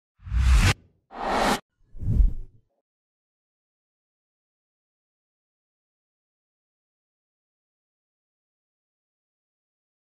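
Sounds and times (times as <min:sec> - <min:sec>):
whoosh with deep rumble: 0:00.2 - 0:02.5.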